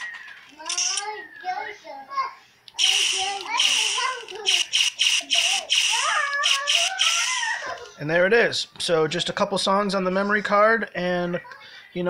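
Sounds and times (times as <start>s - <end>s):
blaster sound effects: 4.5s - 7.2s.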